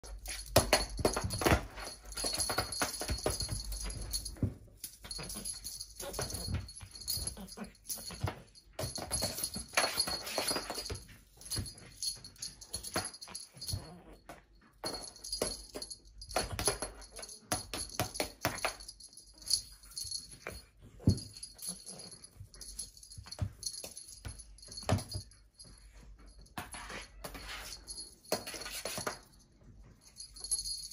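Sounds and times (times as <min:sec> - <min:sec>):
small bell jingling: 0:00.0 - 0:30.9.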